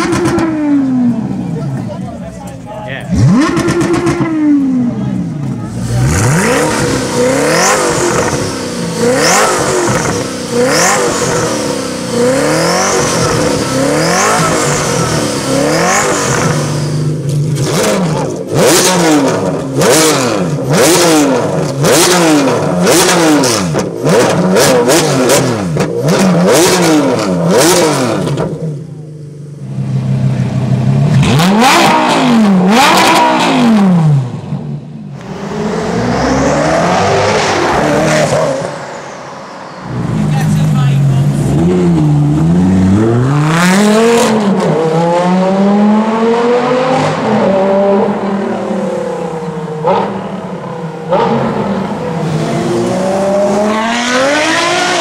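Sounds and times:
car engine revving: 0:00.0 - 0:55.0
car pulling away: 0:29.6 - 0:55.0.

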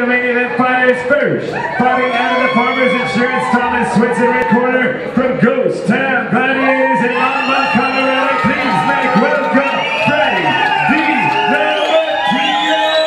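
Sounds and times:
crowd cheering and shouting: 0:00.0 - 0:13.0.

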